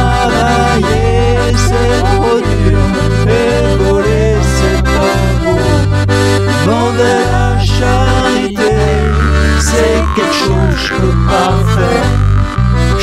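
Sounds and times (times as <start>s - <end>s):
accordion melody: 0.0s - 13.0s
steady bass line: 0.0s - 13.0s.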